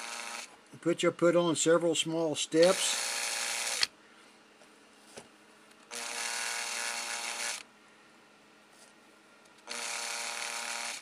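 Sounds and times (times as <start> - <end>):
small electric motor humming: 0.0 - 0.6, 2.6 - 3.9, 5.9 - 7.7, 9.6 - 11.0.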